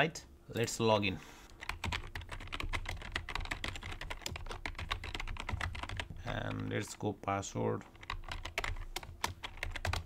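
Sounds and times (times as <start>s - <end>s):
fast keyboard typing: 1.5s - 6.8s, 7.9s - 10.0s.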